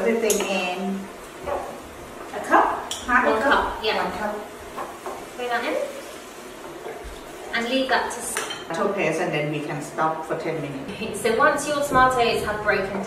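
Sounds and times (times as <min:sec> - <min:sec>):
women's voices: 0:00.0 - 0:01.0, 0:02.3 - 0:04.5, 0:07.5 - 0:13.0
wooden spoon stirring in a pot: 0:04.5 - 0:08.0.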